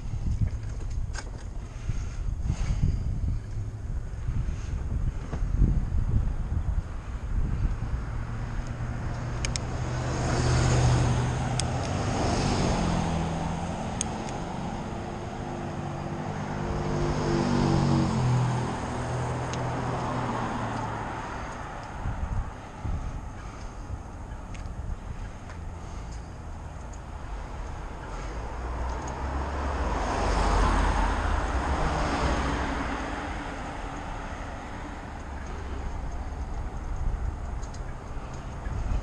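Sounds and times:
wind rumbling on microphone: 0.0 - 39.0
vehicle engine passing: 6.9 - 39.0
sharp clicks: 8.6 - 9.7.

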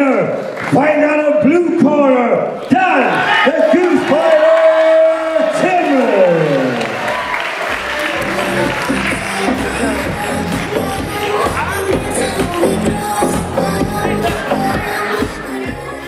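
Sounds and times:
crowd cheering: 2.6 - 16.0
music with steady beat: 8.1 - 16.0.

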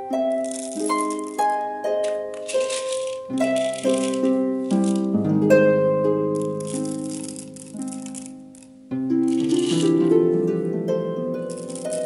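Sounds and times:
gentle harp music: 0.0 - 12.0
coffee beans rattling into metal hopper: 9.3 - 9.9.

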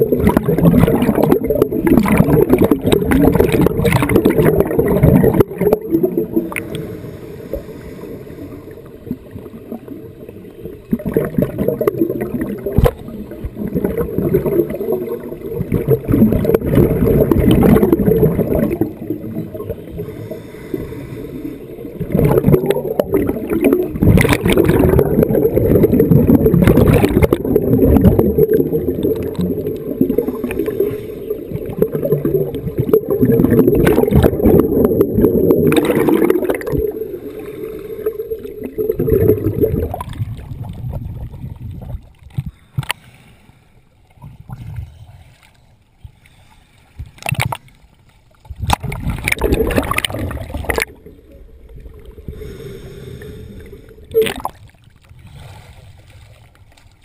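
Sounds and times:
scuba exhaust bubbles: 0.0 - 42.9, 48.6 - 55.7
muffled underwater rumble: 0.0 - 43.0, 44.0 - 57.0.

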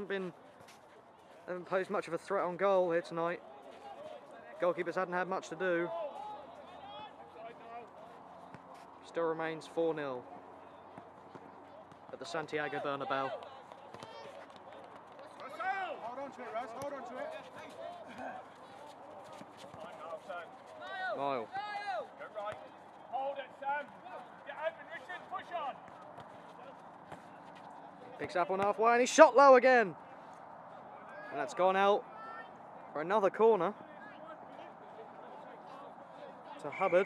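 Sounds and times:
running feet: 0.2 - 2.2, 10.2 - 28.8
footballers shouting: 3.0 - 30.2, 30.8 - 37.0.

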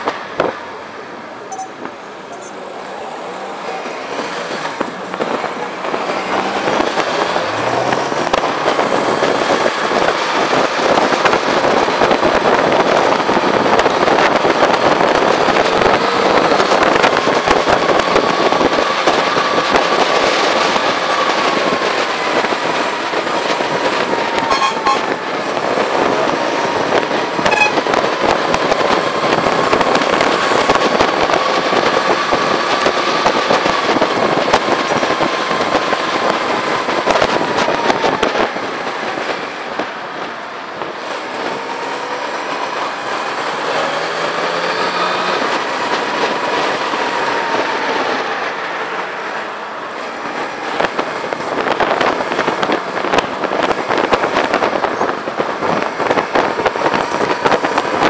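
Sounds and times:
motorcycle engine riding: 0.0 - 58.0
wind crackle on microphone: 4.0 - 58.0.

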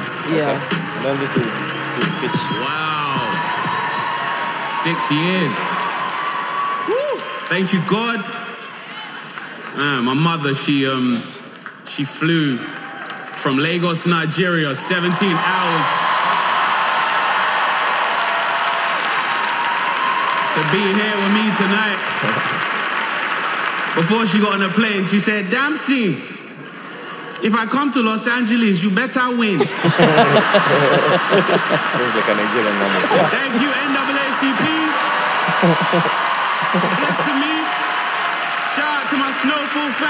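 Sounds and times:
audience applauding: 0.0 - 10.8, 14.6 - 25.4, 29.6 - 40.0
person speaking: 0.2 - 2.6, 21.7 - 22.6, 29.6 - 37.7
man talking: 0.3 - 3.4, 4.7 - 5.8, 7.5 - 8.3, 9.8 - 12.6, 13.4 - 15.9, 20.6 - 22.6, 24.0 - 26.3, 27.4 - 36.1, 36.7 - 37.8.

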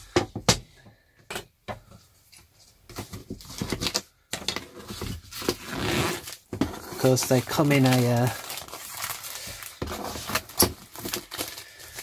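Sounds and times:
plastic wrap rustling: 4.8 - 12.0.

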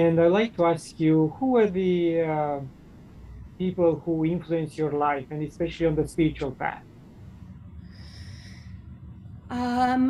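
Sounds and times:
low background rumble: 0.0 - 10.0
person breathing in: 7.8 - 8.8.

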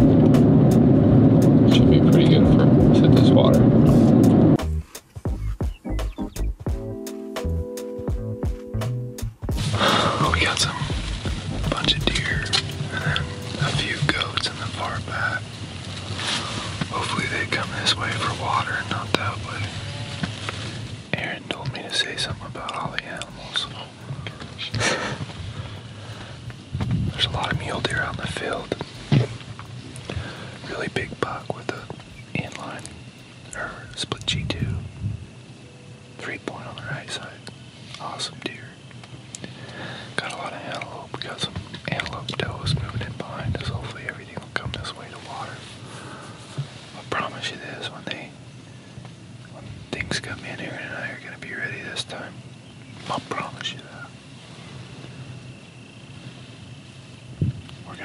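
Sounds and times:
small rustles: 9.5 - 35.2, 36.4 - 58.0
hushed whispering: 9.6 - 15.5, 16.1 - 19.8, 20.4 - 25.4, 27.1 - 29.4, 30.1 - 35.0, 36.2 - 38.9, 39.9 - 48.4, 49.5 - 52.4, 53.0 - 54.2.

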